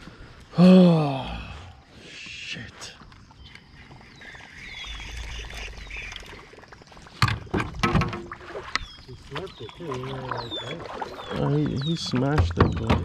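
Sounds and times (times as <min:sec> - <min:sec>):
paddle knocking on canoe hull: 0:09.4 - 0:13.0.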